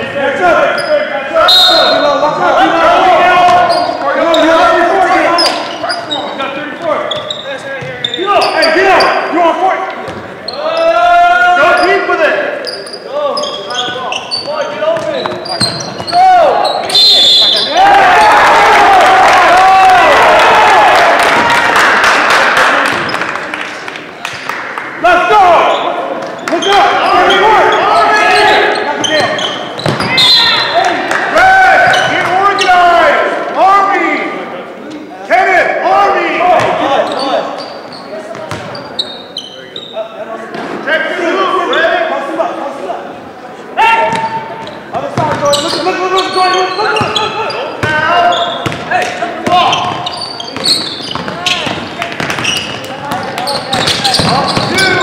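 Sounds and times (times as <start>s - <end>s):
people shouting in a gym: 10.4s - 12.2s, 14.0s - 21.3s, 30.0s - 34.3s, 43.7s - 44.5s, 53.4s - 55.0s.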